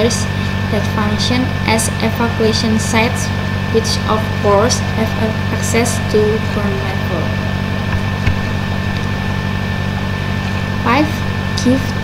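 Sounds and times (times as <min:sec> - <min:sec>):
low electrical hum: 0:00.0 - 0:12.0
thin high steady tone: 0:00.0 - 0:12.0.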